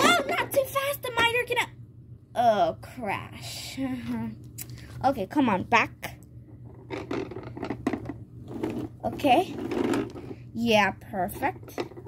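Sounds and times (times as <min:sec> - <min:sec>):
toy car wheels rolling on bricks: 0:06.7 - 0:12.0.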